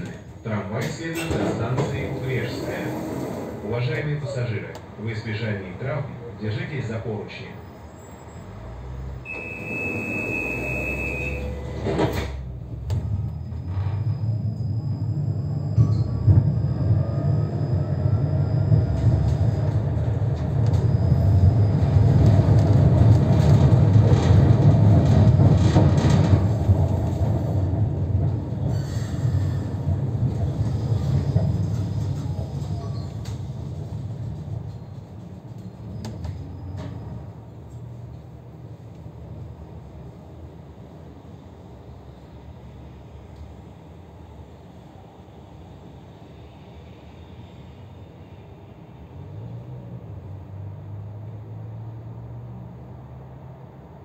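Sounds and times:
tram doors closing clunk: 0:00.0 - 0:05.0, 0:08.4 - 0:38.3
tram wheels rumbling on rails: 0:00.0 - 0:54.0
tram motors: 0:05.7 - 0:49.6
high beep: 0:09.3 - 0:11.6.

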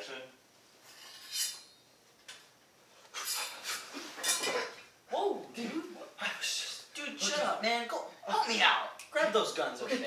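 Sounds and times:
metallic scrapes and clinks: 0:00.9 - 0:01.8.

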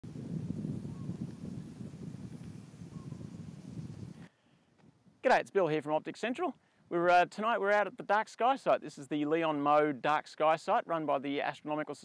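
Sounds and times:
wind buffeting microphone: 0:00.0 - 0:05.5.

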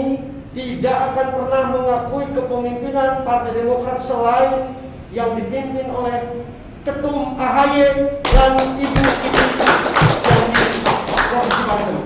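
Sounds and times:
people clapping: 0:08.2 - 0:12.0.

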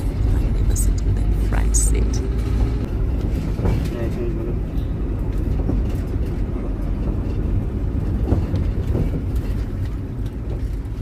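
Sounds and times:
minibus engine rumble: 0:00.0 - 0:11.0
road noise: 0:00.0 - 0:11.0
small rattles: 0:02.2 - 0:11.0.

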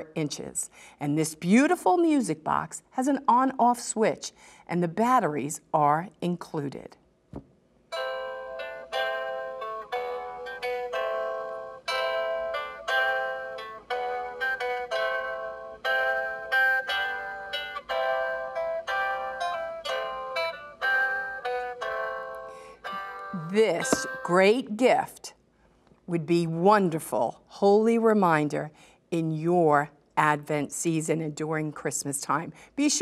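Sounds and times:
music box guitar melody: 0:07.9 - 0:24.4.

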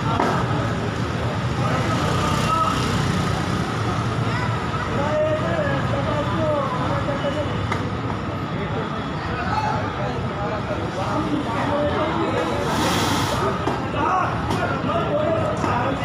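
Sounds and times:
outdoor rushing noise: 0:10.6 - 0:16.0.

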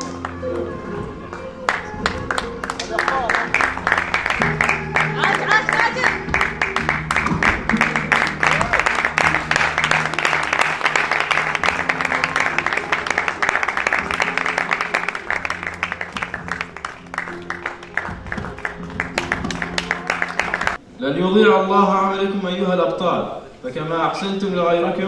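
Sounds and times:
background music with held notes: 0:00.0 - 0:22.8
audience applauding: 0:01.7 - 0:20.8.

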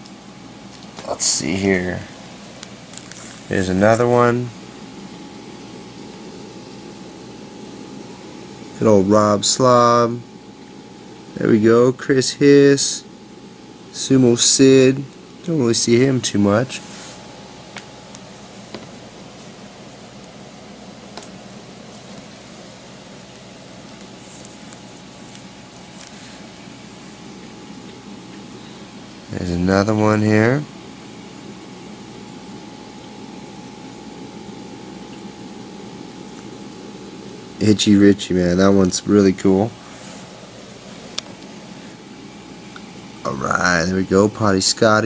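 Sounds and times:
low hiss of room tone: 0:00.0 - 0:45.0.

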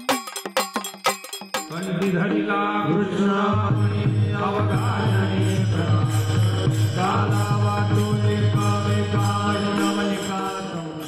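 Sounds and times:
men chanting devotional song: 0:01.5 - 0:11.0.

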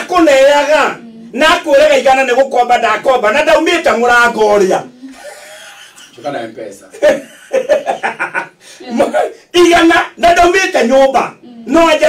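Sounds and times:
person chuckling while talking: 0:05.0 - 0:06.2.

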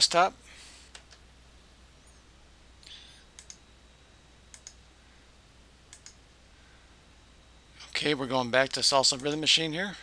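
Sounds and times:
computer mouse clicks: 0:00.9 - 0:01.2, 0:03.4 - 0:03.6, 0:04.5 - 0:04.8, 0:05.9 - 0:06.2.

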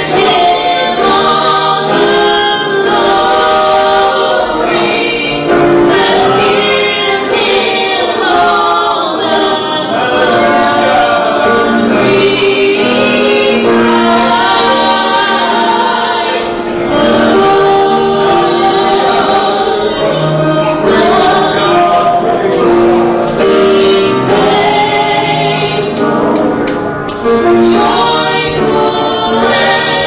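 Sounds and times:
women singing gospel song: 0:00.0 - 0:26.3, 0:27.3 - 0:30.0
grand piano: 0:00.0 - 0:30.0.

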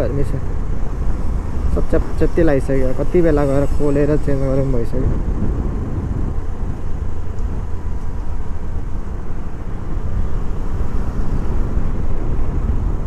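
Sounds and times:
wind noise: 0:00.0 - 0:13.0.

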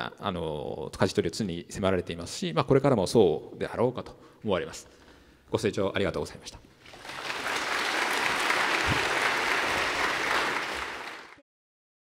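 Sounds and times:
audience applauding: 0:06.8 - 0:11.4.

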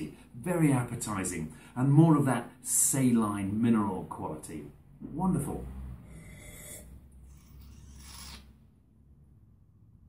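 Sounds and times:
faint hiss of breath sipping: 0:06.1 - 0:08.5.

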